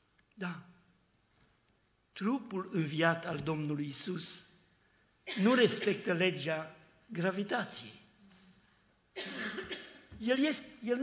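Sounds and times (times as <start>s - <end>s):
person coughing: 5.3s - 6.1s, 9.2s - 10.1s.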